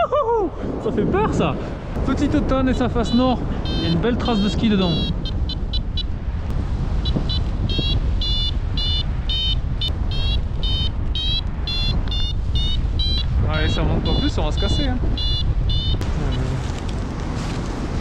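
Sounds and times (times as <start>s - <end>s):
wind rushing on microphone: 0.0s - 18.0s
variometer high beeps: 2.9s - 6.2s, 7.0s - 16.6s.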